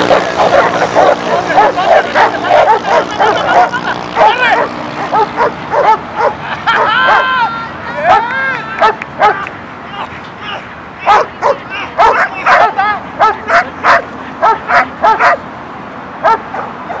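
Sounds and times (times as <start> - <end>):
dog barking in high yips: 0.0 - 7.4, 8.1 - 9.5, 11.1 - 15.4, 16.2 - 17.0.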